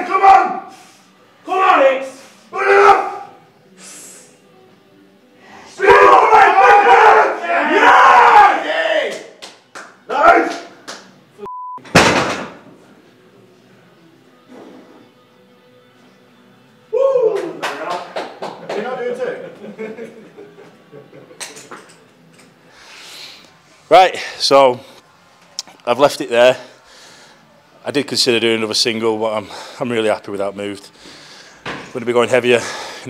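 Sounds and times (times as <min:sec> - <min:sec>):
loud shouting: 0:00.0 - 0:00.7, 0:01.4 - 0:03.4, 0:05.7 - 0:09.4, 0:10.1 - 0:10.7
censor bleep: 0:11.4 - 0:11.8
barbell crashing onto platform: 0:11.9 - 0:12.7.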